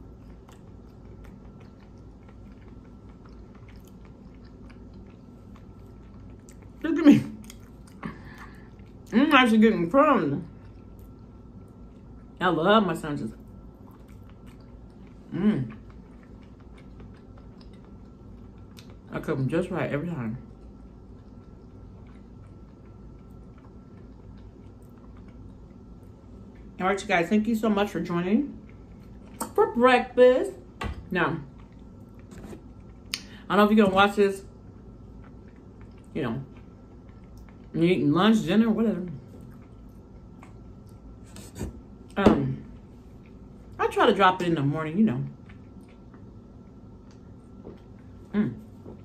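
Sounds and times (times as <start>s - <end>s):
chewing with wet mouth clicks: 0.0s - 9.2s, 10.4s - 12.4s, 13.3s - 19.2s, 20.2s - 26.8s, 28.5s - 29.7s, 31.4s - 33.4s, 34.4s - 38.0s, 39.0s - 41.2s, 41.9s - 43.8s, 45.2s - 49.0s
low hum: 0.0s - 49.0s.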